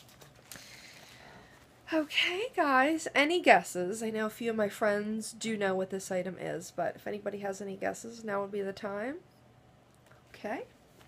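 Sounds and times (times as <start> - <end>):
packaging rustling: 0.0 - 1.1.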